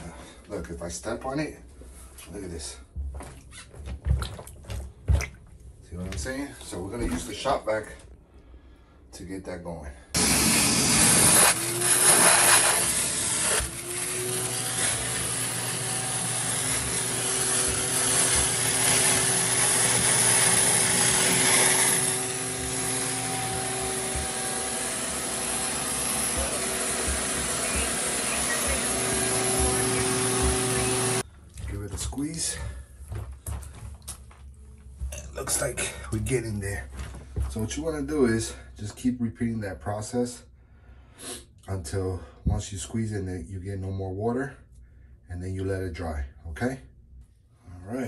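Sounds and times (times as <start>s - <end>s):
shop vac sucking water: 10.2s - 32.7s.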